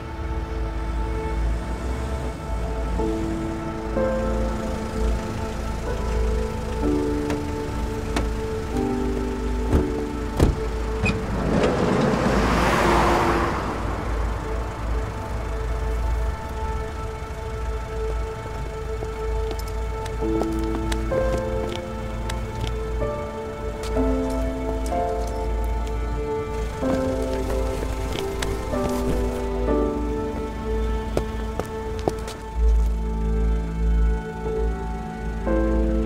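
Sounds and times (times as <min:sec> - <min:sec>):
sustained music notes: 0:00.0 - 0:36.0
car driving past on wet street: 0:01.0 - 0:18.0, 0:19.4 - 0:32.7
sharp knocks: 0:09.7 - 0:10.7
rain on pavement: 0:23.8 - 0:29.6.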